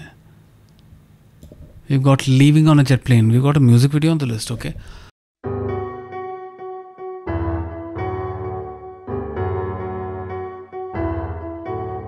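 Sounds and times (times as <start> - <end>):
man speaking: 1.9 - 4.8.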